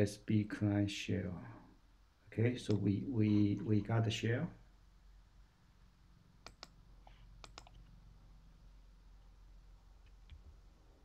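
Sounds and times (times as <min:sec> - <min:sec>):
computer clicks: 0:06.4 - 0:07.9.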